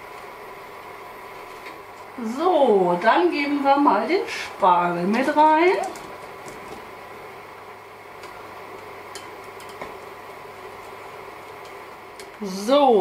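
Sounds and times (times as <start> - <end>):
pot simmering: 0.0 - 2.2, 4.2 - 13.0.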